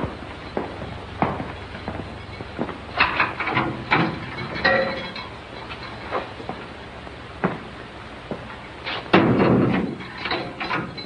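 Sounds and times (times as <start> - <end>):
film soundtrack hiss: 0.0 - 11.0.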